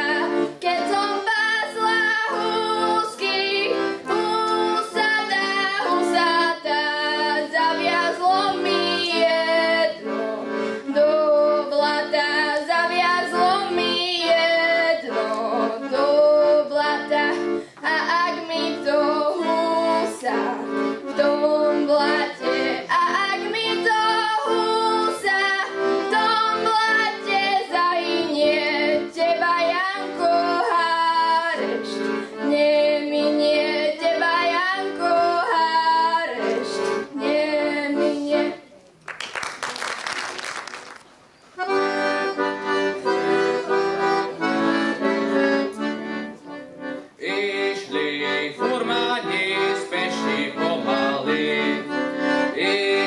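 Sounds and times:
rhythmic chordal accompaniment: 0.0 - 38.6, 41.6 - 53.0
girl singing into microphone: 0.0 - 38.7.

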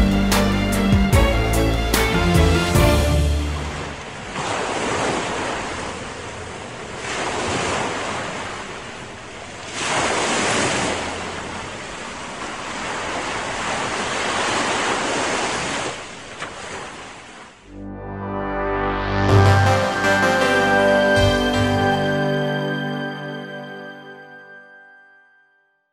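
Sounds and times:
waves breaking and washing in: 0.2 - 17.8.

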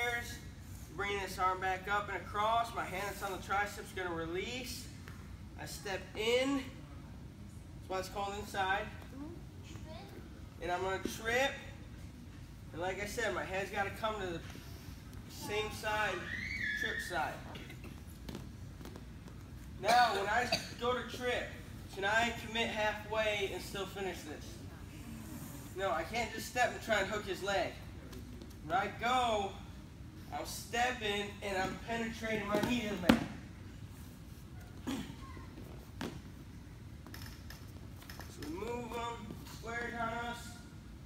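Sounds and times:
low room noise: 0.0 - 41.0
man speaking: 15.3 - 16.2, 38.4 - 40.7.

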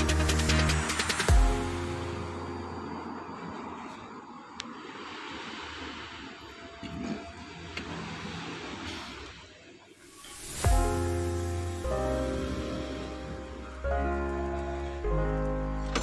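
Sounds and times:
low rumbling background noise: 0.0 - 16.0.

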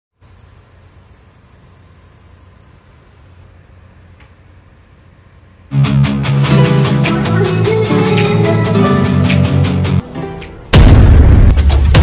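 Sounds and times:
even hiss: 0.2 - 3.5
faint high hiss: 0.2 - 3.6.

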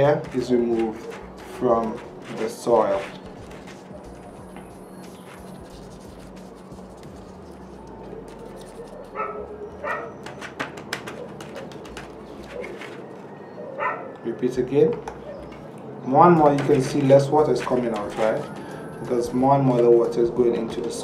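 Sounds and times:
steady low hum: 0.0 - 10.1
animal calls: 7.8 - 14.3.

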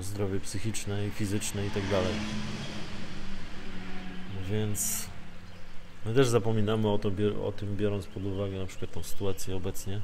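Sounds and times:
low steady hum: 0.0 - 10.0
passing vehicle rushing: 0.4 - 6.5.

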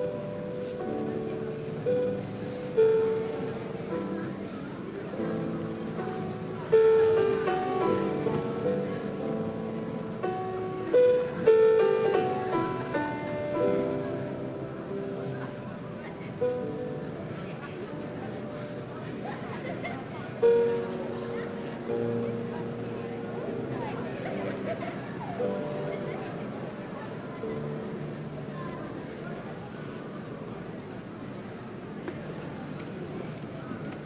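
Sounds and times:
solo piano playing: 0.0 - 30.4.

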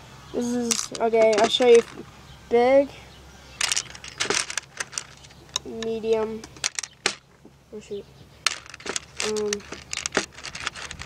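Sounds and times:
plastic rods clicking and rattling: 0.7 - 2.0, 3.6 - 7.2, 8.5 - 11.0.

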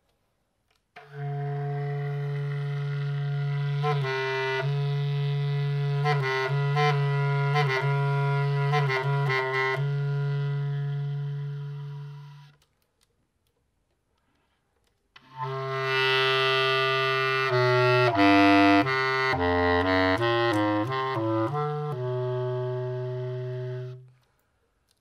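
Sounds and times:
bass clarinet long low note: 1.0 - 12.6, 15.3 - 24.1.

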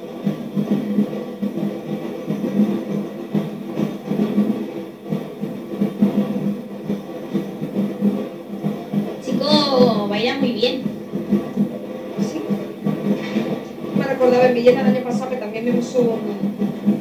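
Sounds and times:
drum-led parade music: 0.0 - 17.0.

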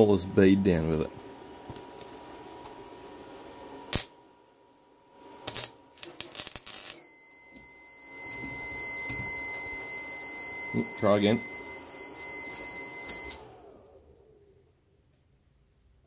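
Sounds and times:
welder humming: 0.0 - 14.5
welding arc sputtering: 3.9 - 4.2, 5.4 - 7.0
high-pitched alarm tone: 6.9 - 13.4.

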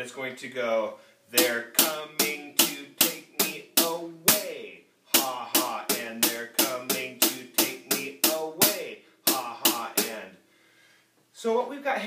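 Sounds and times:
drum kit shuffle groove: 1.4 - 10.3.

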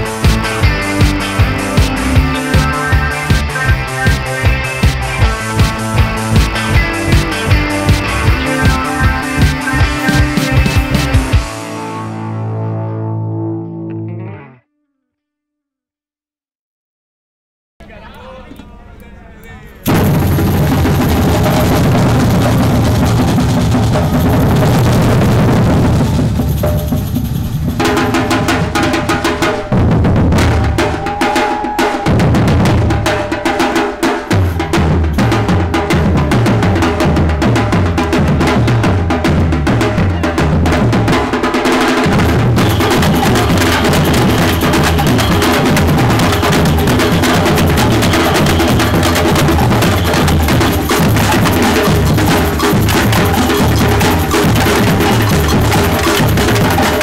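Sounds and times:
street drum group playing: 0.0 - 11.8, 19.8 - 57.0.

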